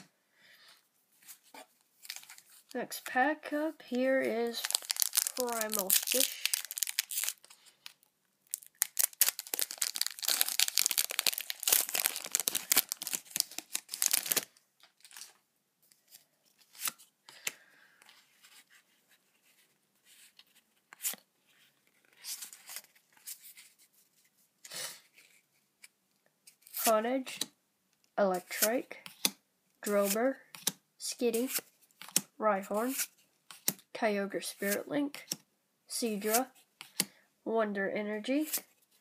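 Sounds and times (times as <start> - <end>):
cards rustling: 1.2 - 2.8, 4.2 - 17.5, 36.2 - 37.1
person speaking: 2.7 - 7.4, 29.8 - 30.4, 32.4 - 33.0, 34.0 - 36.6
foil wrapper tearing and crinkling: 4.4 - 7.5, 8.5 - 15.3.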